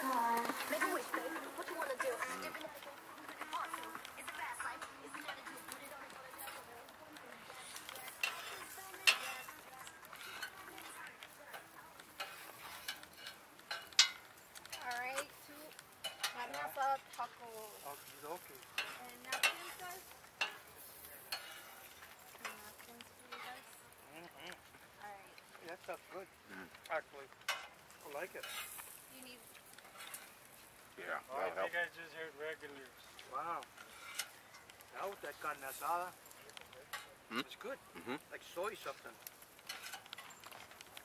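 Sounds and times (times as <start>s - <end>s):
cutlery clicking and scraping plate: 7.8s - 11.6s, 12.2s - 15.3s, 16.0s - 16.7s, 18.8s - 19.8s, 21.3s - 21.8s, 39.6s - 40.6s.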